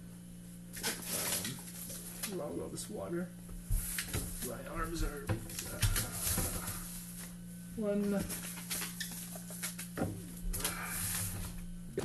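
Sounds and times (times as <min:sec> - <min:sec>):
steady low hum: 0:00.0 - 0:12.0
boxes knocking on fridge shelves: 0:10.0 - 0:12.0.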